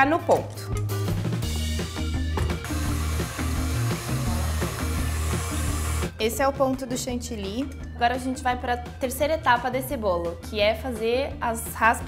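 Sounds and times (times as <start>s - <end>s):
background music with bass line: 0.0s - 12.0s
stand mixer whirring: 2.6s - 6.1s.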